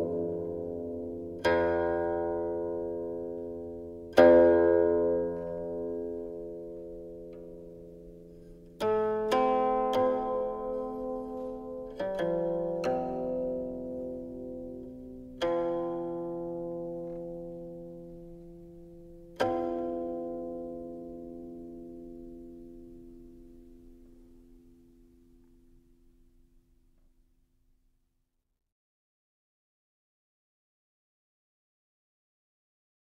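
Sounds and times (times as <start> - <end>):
zither notes plucked: 0.0 - 25.8.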